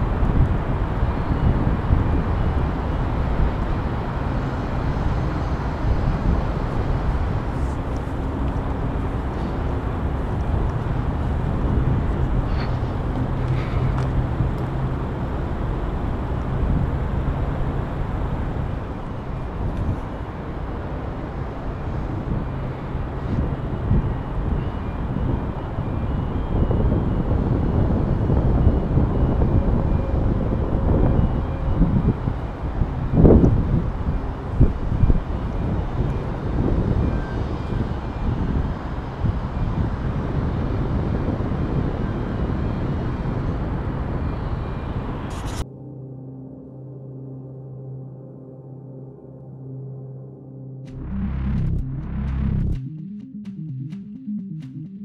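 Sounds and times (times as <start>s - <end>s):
wind buffeting microphone: 0.0s - 45.6s.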